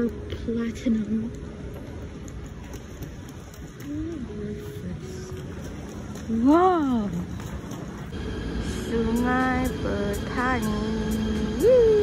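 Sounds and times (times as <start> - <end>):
railway platform background noise: 0.0 - 12.0.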